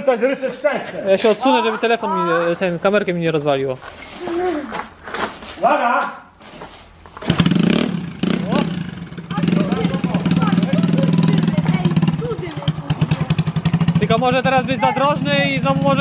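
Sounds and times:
scooter engine revving: 7.2 - 16.0.

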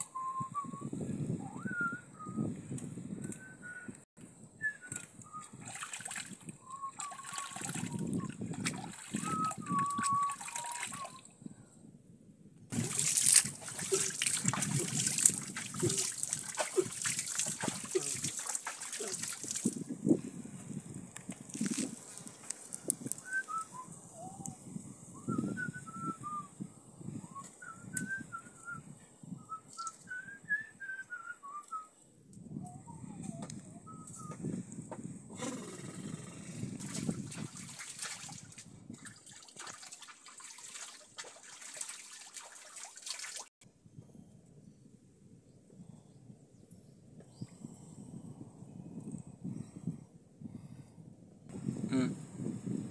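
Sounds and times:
water splashing and trickling: 4.9 - 11.3, 12.7 - 20.2, 21.2 - 23.3, 36.8 - 43.6.

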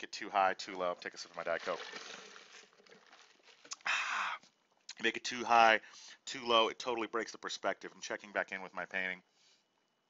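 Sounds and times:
person sipping fizzy drink: 1.5 - 4.9.

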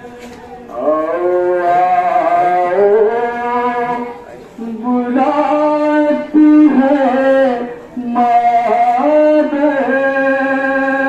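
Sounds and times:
man chanting into microphone: 0.0 - 11.0.

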